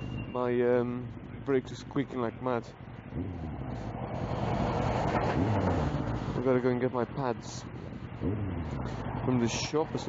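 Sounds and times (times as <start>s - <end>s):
diesel truck engine rumble: 0.0s - 10.0s.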